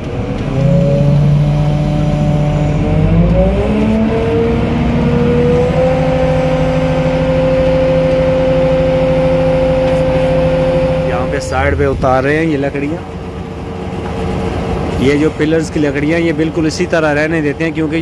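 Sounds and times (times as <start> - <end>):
crane diesel engine revving: 0.0 - 18.0.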